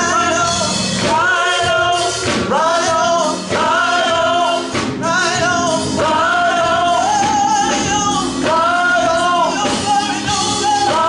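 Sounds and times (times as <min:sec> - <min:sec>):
praise team singing gospel song: 0:00.0 - 0:11.0.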